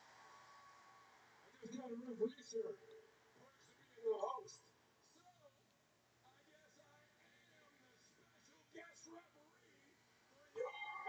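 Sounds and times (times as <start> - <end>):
faint television speech: 0.0 - 11.0.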